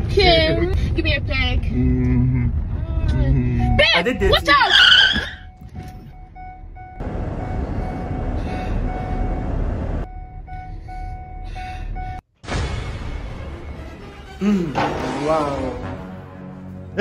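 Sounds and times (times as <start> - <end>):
car road and engine noise: 0.0 - 12.4, 13.0 - 17.0.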